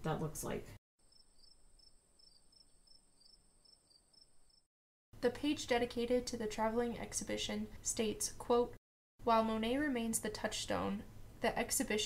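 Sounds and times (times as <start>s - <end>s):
insect chirping: 1.0s - 4.7s.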